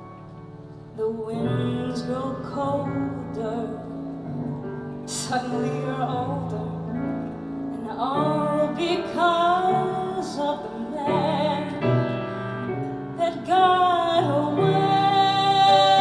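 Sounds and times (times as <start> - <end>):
piano: 0.0 - 16.0
woman singing a slow ballad: 0.9 - 16.0.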